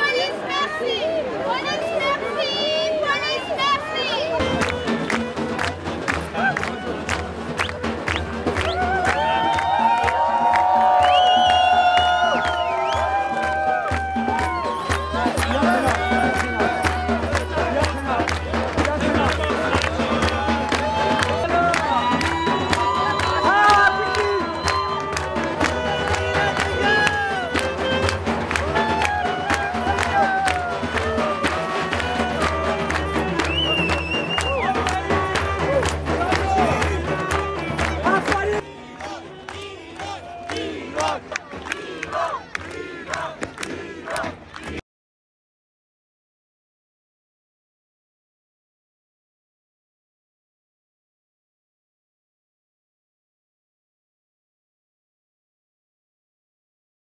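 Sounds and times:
crowd clapping cheering and shouting: 0:00.0 - 0:44.8
clarinet dance music: 0:03.4 - 0:41.5.

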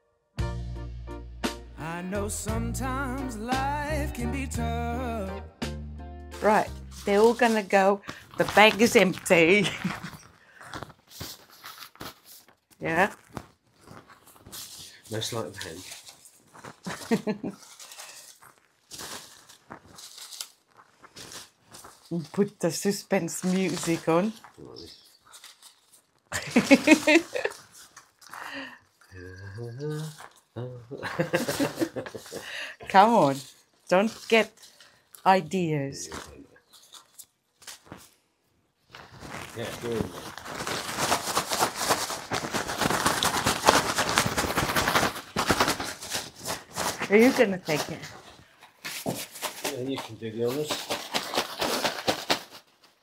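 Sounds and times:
paper slips rustling: 0:06.3 - 0:28.8, 0:31.0 - 0:38.2, 0:38.9 - 0:53.0
cloth bag rustling: 0:06.4 - 0:29.1, 0:31.2 - 0:35.2, 0:36.0 - 0:38.2, 0:38.8 - 0:53.0.

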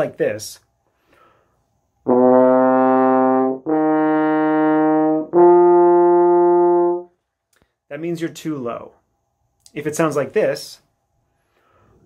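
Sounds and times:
french horn sustained notes: 0:02.1 - 0:07.1.

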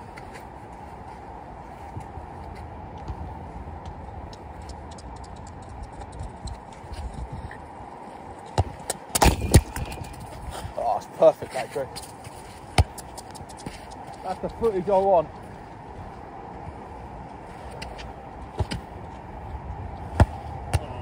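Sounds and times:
low background noise: 0:00.0 - 0:21.0
football thudding: 0:08.6 - 0:10.2, 0:12.7 - 0:13.8, 0:18.5 - 0:18.9, 0:20.1 - 0:20.9.

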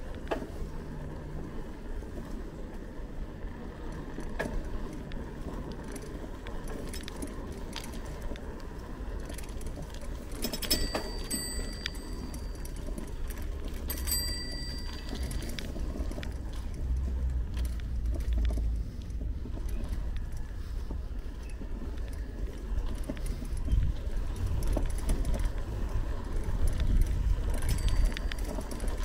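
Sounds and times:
bicycle tyres rumbling on concrete: 0:00.0 - 0:29.0
bike rattles and clicks: 0:00.0 - 0:29.0
wind on microphone: 0:22.7 - 0:28.6.

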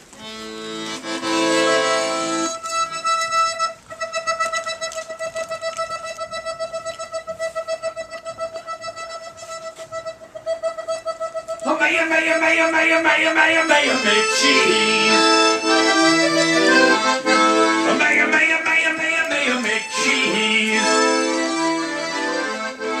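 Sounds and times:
accordion playing chords: 0:00.0 - 0:23.0
pulsing accordion note: 0:00.2 - 0:05.2, 0:06.3 - 0:23.0.

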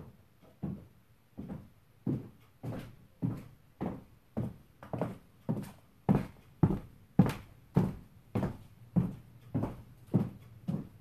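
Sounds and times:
high heels on hardwood floor: 0:00.6 - 0:11.0.

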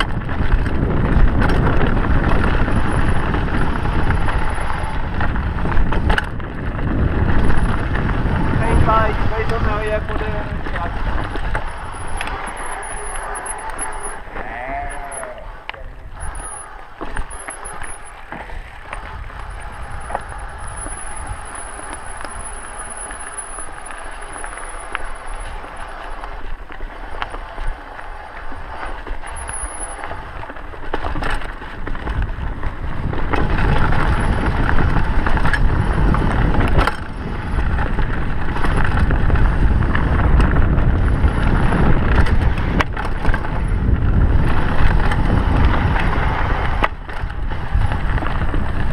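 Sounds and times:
bike rattling and knocking: 0:00.0 - 0:48.9
tyres on dirt: 0:00.0 - 0:48.9
wind rush on microphone: 0:00.0 - 0:48.9.

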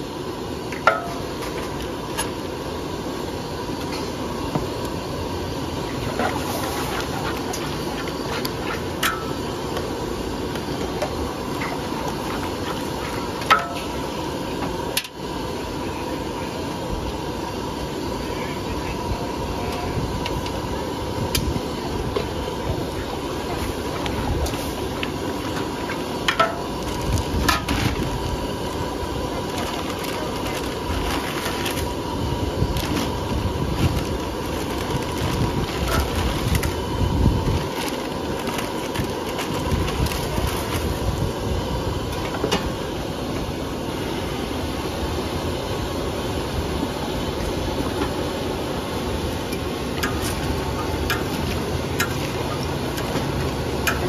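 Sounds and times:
gas burner roaring: 0:00.0 - 0:54.0.

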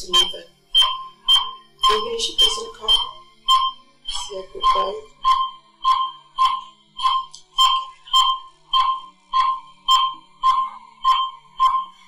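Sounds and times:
patient monitor beeping: 0:00.0 - 0:12.0.

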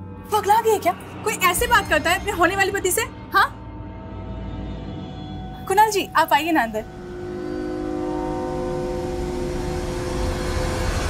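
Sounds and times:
sustained music chord: 0:00.0 - 0:11.0.

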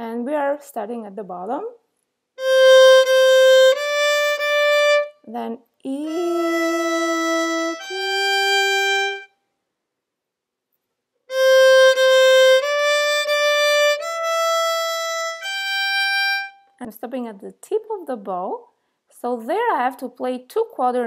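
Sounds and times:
solo violin bowed notes: 0:02.4 - 0:05.3, 0:06.0 - 0:09.4, 0:11.3 - 0:16.7.

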